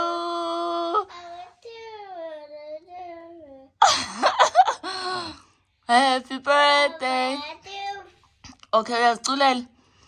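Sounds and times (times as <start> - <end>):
toddler singing: 0.8 - 3.8.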